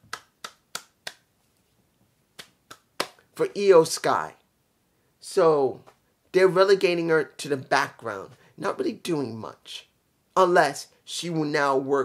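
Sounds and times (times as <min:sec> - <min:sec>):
fingers snapping: 0:00.1 - 0:01.3, 0:02.4 - 0:03.2.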